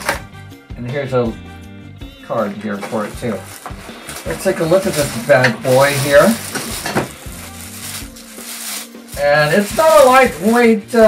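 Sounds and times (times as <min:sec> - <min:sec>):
plastic bag crinkling: 0:02.9 - 0:11.0.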